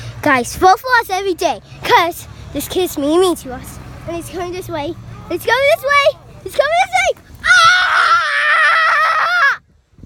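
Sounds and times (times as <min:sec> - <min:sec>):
child screaming high-pitched: 0:07.4 - 0:09.6.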